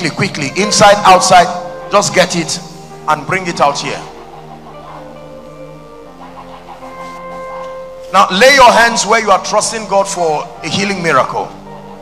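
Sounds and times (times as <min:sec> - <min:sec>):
held keyboard chords: 0:00.0 - 0:12.0.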